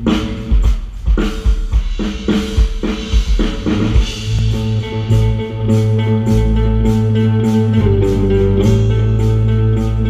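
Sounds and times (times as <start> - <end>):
drum kit beating steadily: 0.0 - 10.0
electric guitar: 2.1 - 10.0
bass guitar holding notes: 3.6 - 10.0.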